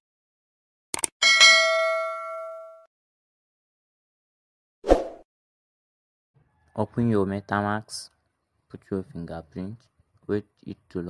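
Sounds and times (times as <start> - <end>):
bell ding: 1.2 - 2.9.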